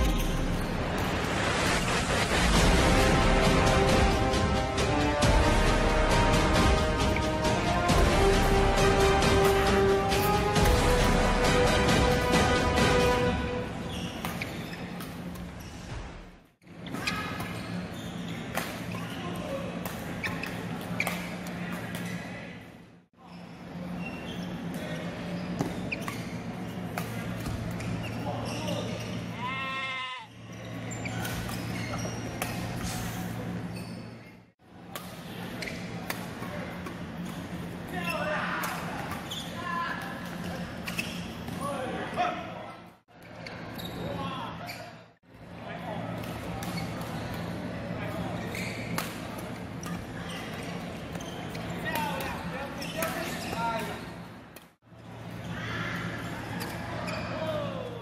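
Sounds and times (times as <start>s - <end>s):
hum of large hall: 0.0s - 58.0s.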